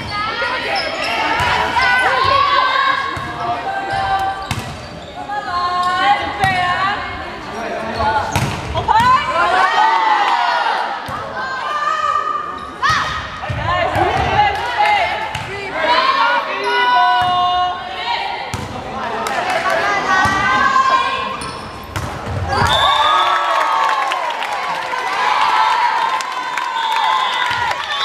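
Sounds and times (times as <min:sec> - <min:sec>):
sneakers squeaking on floor: 0:03.2 - 0:06.1, 0:21.3 - 0:23.0.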